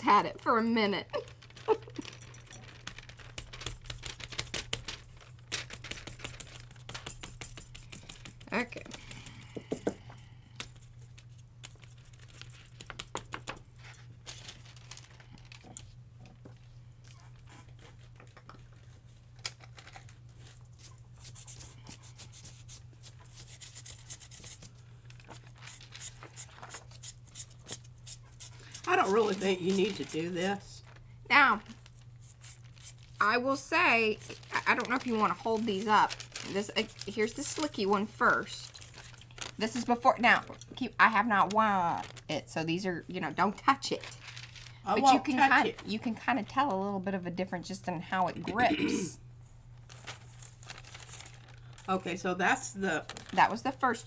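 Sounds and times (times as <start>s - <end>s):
paper rustling: 1.1s - 9.3s, 10.7s - 15.8s, 17.2s - 33.2s, 34.0s - 40.6s, 41.4s - 42.4s, 43.9s - 45.9s, 49.8s - 52.1s
metal bangles clinking: 5.8s - 8.6s.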